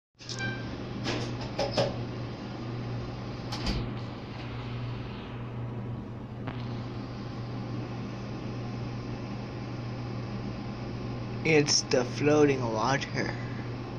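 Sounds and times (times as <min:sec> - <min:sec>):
steady low hum: 0:00.2 - 0:13.9.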